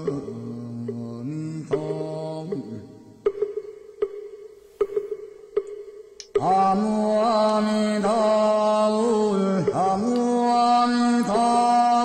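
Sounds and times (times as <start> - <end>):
struck percussion beat: 0.0 - 8.4, 9.6 - 10.6.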